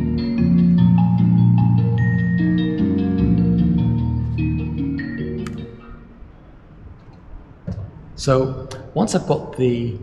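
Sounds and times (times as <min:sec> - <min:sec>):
layered sustained synth notes: 0:00.0 - 0:06.3.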